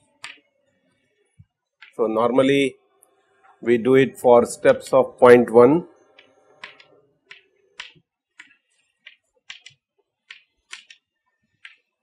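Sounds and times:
chalk tapping on chalkboard: 0.2 - 0.5, 6.1 - 11.0, 11.6 - 12.0.

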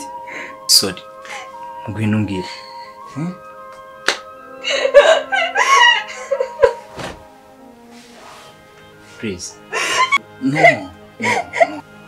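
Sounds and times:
film music: 0.0 - 12.0
sharp smack: 4.0 - 4.3.

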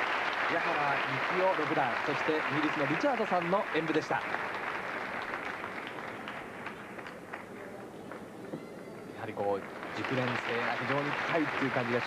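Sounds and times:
audience applauding: 0.0 - 12.0
crowd noise: 0.0 - 12.0.

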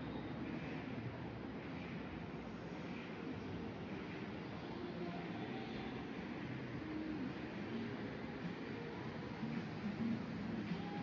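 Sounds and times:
low ambient background noise: 0.0 - 11.0.

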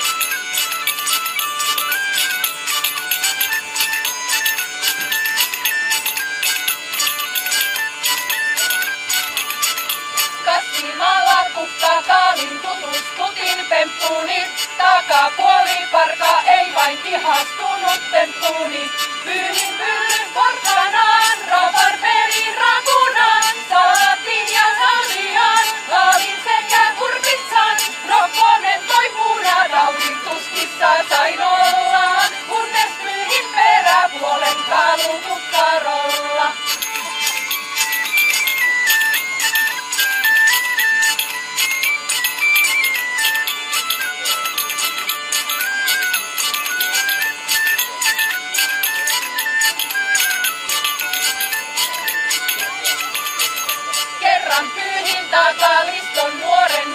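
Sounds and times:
hurdy-gurdy drone: 0.0 - 56.9
small pipes playing melody: 0.0 - 56.9
tambourine jingling: 0.0 - 56.9
women singing in unison: 10.4 - 36.7, 54.2 - 56.9.

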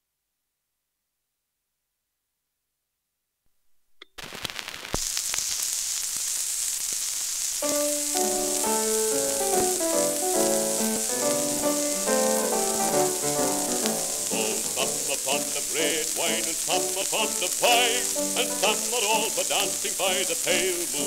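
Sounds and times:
loud steady record hiss: 3.5 - 21.0
band instrumental music: 7.6 - 15.1.

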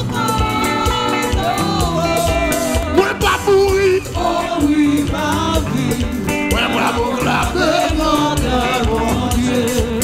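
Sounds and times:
band with steady beat: 0.0 - 10.0
bass line: 0.0 - 10.0
person singing into microphone: 0.0 - 10.0.

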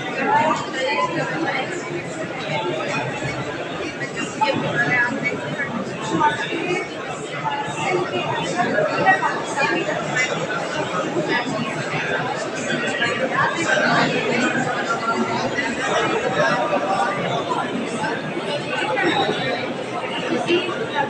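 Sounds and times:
babble of overlapping voices: 0.0 - 21.0.

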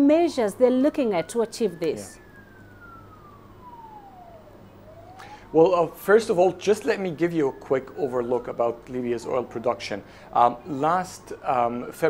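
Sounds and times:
faint emergency vehicle siren: 0.0 - 12.0
low steady hum: 0.0 - 12.0.

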